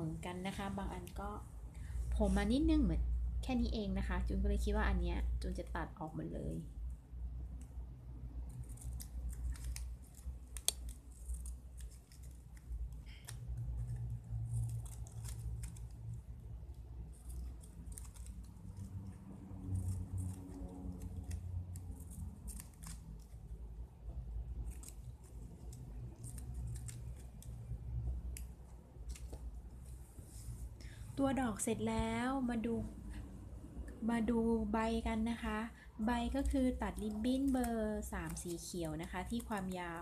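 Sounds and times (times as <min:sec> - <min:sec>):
low steady hum: 0:00.0 - 0:40.0
scissors snipping: 0:08.4 - 0:23.4, 0:24.5 - 0:29.9, 0:36.2 - 0:40.0.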